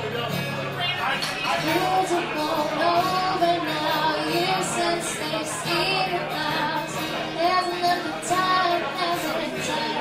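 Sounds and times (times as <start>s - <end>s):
strummed acoustic guitar: 0.0s - 10.0s
woman singing: 1.3s - 10.0s.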